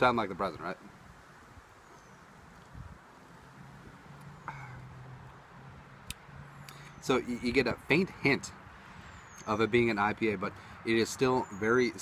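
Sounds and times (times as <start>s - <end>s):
vehicle engine hum: 2.0s - 9.4s.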